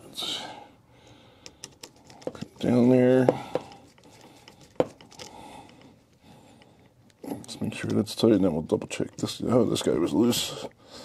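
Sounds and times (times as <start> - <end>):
screwdriver clicking and scraping metal: 1.4 - 2.9, 3.6 - 8.0.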